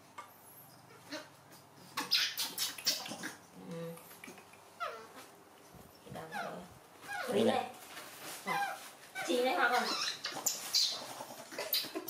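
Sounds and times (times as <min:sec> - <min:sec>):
baby monkey high calls: 0:02.0 - 0:03.4, 0:04.8 - 0:05.2, 0:06.3 - 0:07.4, 0:08.5 - 0:12.0
woman speaking: 0:06.0 - 0:07.8, 0:08.4 - 0:10.1.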